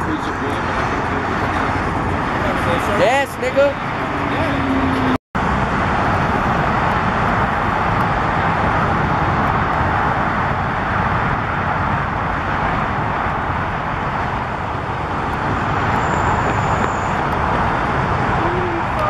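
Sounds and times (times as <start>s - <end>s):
road traffic noise with hiss: 0.0s - 19.0s.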